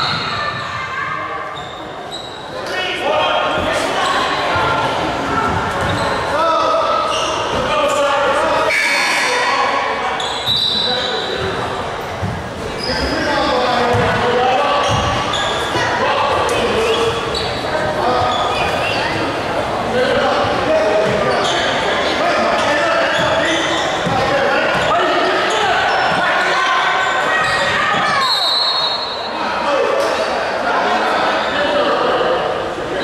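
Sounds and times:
people shouting and chattering: 0:00.0 - 0:33.0.

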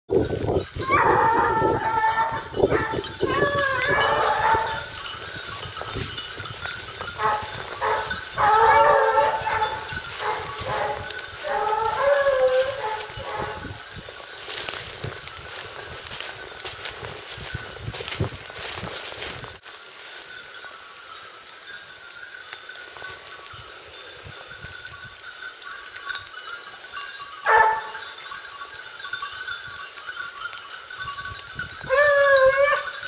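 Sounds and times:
hounds baying: 0:00.8 - 0:05.3, 0:07.0 - 0:13.8, 0:27.4 - 0:28.1, 0:31.9 - 0:33.0.

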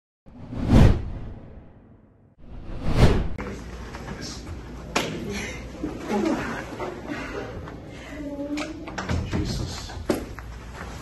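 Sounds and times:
whoosh transition effect: 0:00.3 - 0:03.4.

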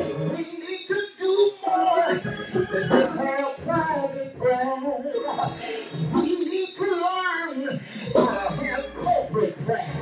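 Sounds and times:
man preaching in chanted style: 0:00.3 - 0:10.0.

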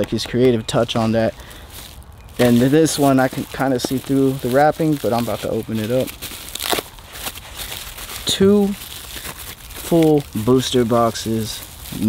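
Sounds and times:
plastic shrink-wrap crinkling: 0:00.0 - 0:12.0.

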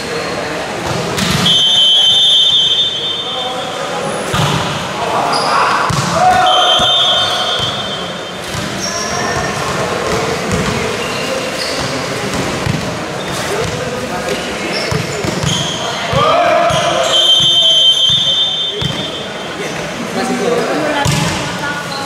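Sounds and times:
shrill whistle blasts: 0:01.4 - 0:03.6, 0:06.3 - 0:09.2, 0:17.0 - 0:19.2
volleyball hits: 0:04.3 - 0:04.9, 0:05.7 - 0:11.0, 0:14.9 - 0:19.2, 0:21.0 - 0:21.6
spectators shouting and cheering: 0:04.8 - 0:10.0, 0:15.8 - 0:17.3.

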